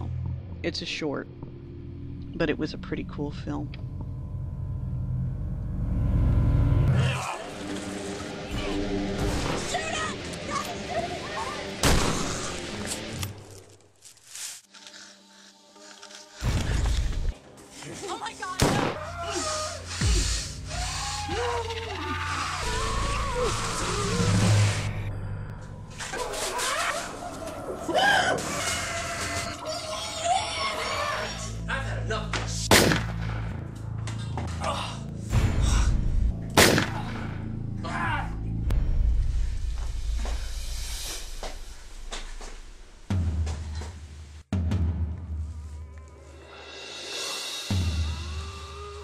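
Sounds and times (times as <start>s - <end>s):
low rumble: 0.0s - 7.0s, 38.4s - 43.2s
person crying out: 19.0s - 24.4s, 48.2s - 49.0s.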